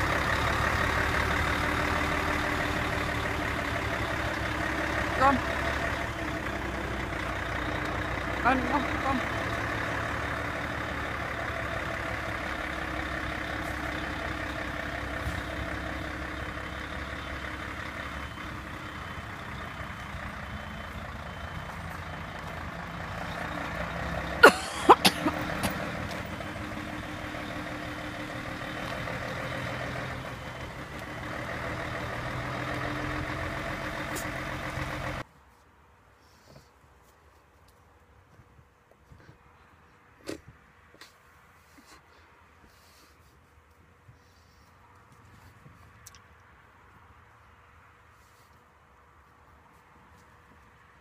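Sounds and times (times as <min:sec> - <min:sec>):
diesel truck engine running: 0:00.0 - 0:35.3.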